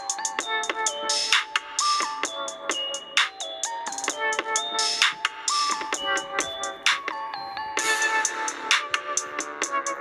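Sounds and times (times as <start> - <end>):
electronic pop music: 0.0 - 10.0.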